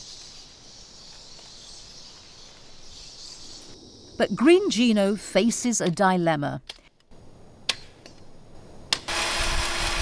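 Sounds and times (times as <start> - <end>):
band saw cutting timber: 8.9 - 10.0.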